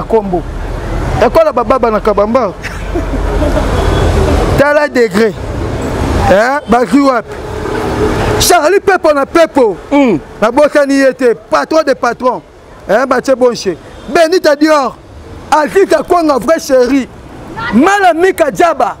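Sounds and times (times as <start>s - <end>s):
street traffic noise: 0.0s - 19.0s
man speaking: 1.1s - 2.8s, 4.5s - 5.4s, 6.2s - 7.4s, 8.3s - 19.0s.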